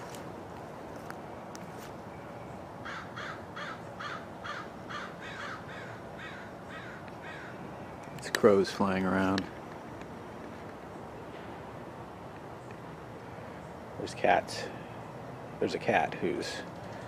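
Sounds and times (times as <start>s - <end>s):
crows cawing: 2.8s - 7.7s.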